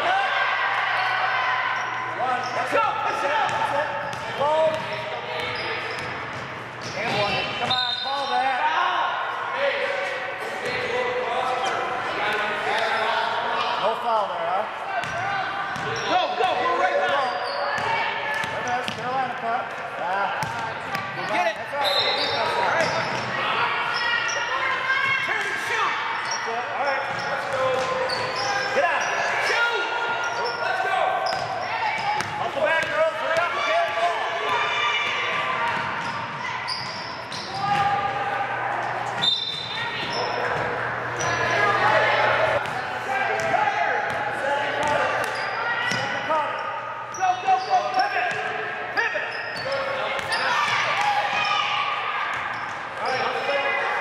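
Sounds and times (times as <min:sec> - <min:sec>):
echoing voices: 0:00.0 - 0:54.0.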